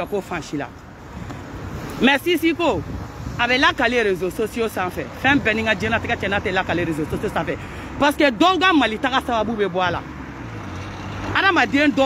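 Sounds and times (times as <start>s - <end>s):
motor vehicle hum: 0.0s - 12.0s
person speaking: 1.8s - 10.2s.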